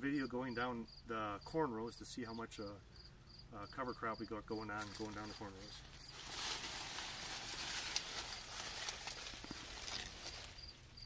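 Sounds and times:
crickets chirping: 0:00.0 - 0:11.0
dry corn leaves rustling: 0:04.5 - 0:11.0.

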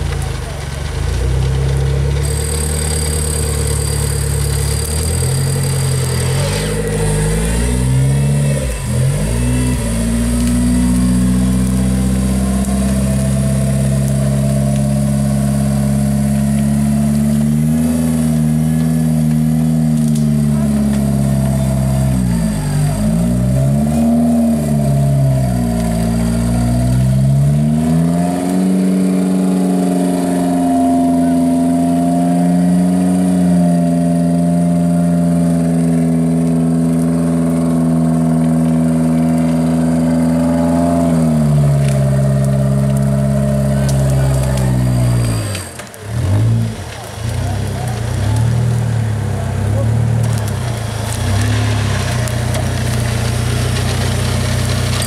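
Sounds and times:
vehicle engine revving hard: 0:01.4 - 0:55.0.

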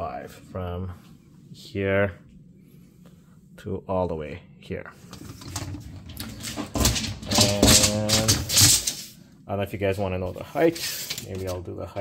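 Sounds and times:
person speaking: 0:07.2 - 0:08.8, 0:09.6 - 0:12.0.

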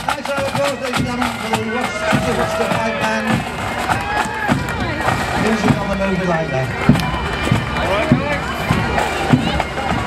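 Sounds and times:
bagpipes: 0:00.0 - 0:10.0
crowd voices: 0:00.0 - 0:10.0
drums: 0:00.0 - 0:10.0
people clapping: 0:00.8 - 0:06.0.

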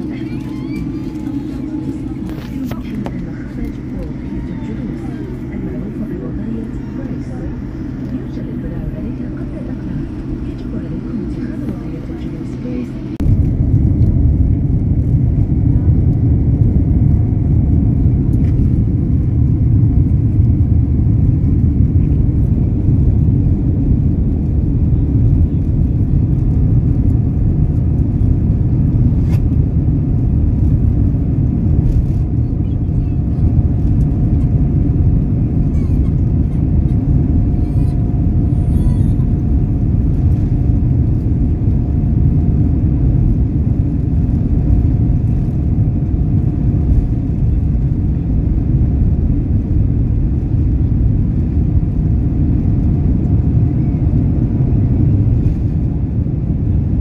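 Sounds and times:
airliner cabin rumble: 0:00.0 - 0:57.0
faint steady whine: 0:00.0 - 0:57.0.

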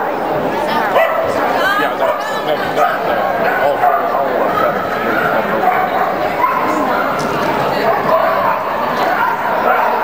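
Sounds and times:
crowd talking indoors: 0:00.0 - 0:10.0.

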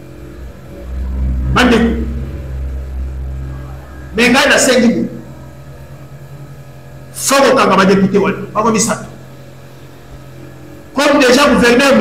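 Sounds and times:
low mechanical rumble: 0:00.0 - 0:11.8
faint hum: 0:00.0 - 0:12.0.

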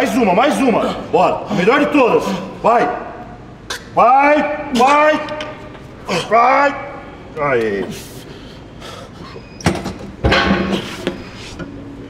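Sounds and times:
heavy weight machine clanks: 0:09.6 - 0:11.2.

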